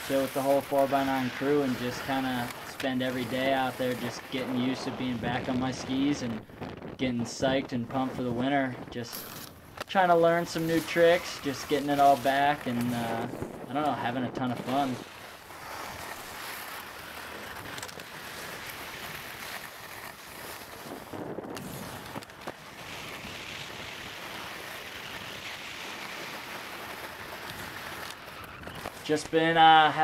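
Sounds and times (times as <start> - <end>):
skis scraping over snow: 0.0 - 30.0
wind on microphone: 4.8 - 9.4, 12.5 - 16.0, 20.8 - 22.2.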